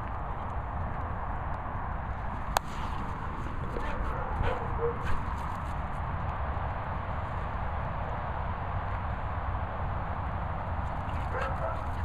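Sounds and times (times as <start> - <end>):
dog yipping: 3.8 - 5.2, 11.3 - 11.9.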